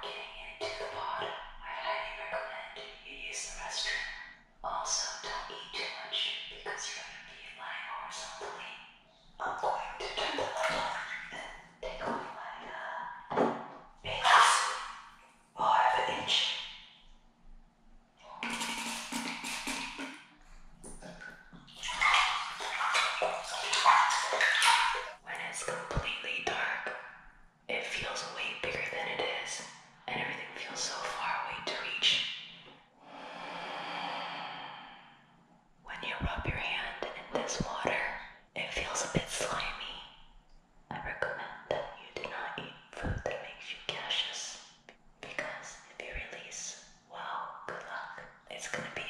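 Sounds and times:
woman whispering: 0.0 - 8.8, 9.4 - 13.3, 14.1 - 14.8, 15.6 - 16.6, 22.1 - 27.0, 27.7 - 32.2, 35.9 - 40.0, 40.9 - 44.6, 45.2 - 49.0.

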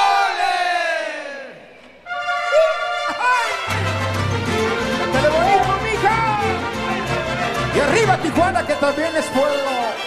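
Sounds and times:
group shouting: 0.0 - 1.6
brass-led music: 2.0 - 10.0.

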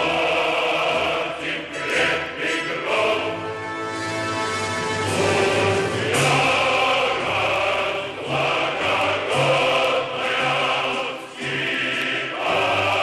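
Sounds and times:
choir singing slow song: 0.0 - 13.0.

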